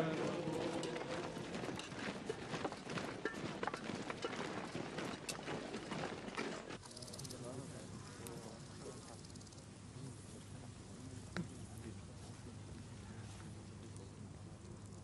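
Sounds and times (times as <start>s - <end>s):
indistinct voices: 0.0s - 2.6s
boots tramping on dirt road: 0.0s - 6.9s.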